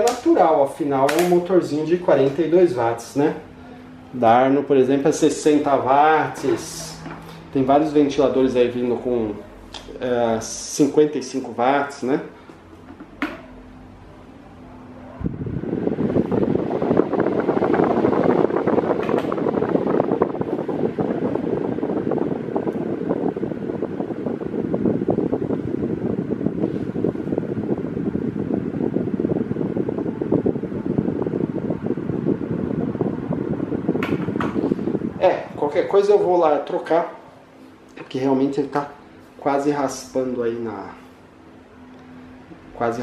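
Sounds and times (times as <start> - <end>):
fan switch click: 0.0 - 2.5, 18.7 - 19.8, 33.9 - 34.7
faint motor hum: 0.0 - 43.0
fan blades rushing air: 0.0 - 43.0.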